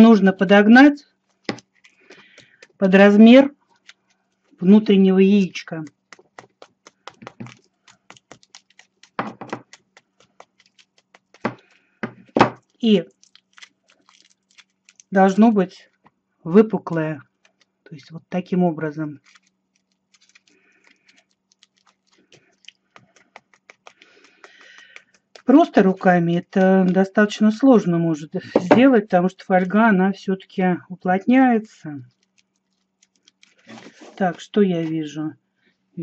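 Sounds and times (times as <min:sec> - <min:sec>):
small hammer tapping foil: 0:05.8 - 0:14.7, 0:19.2 - 0:25.5.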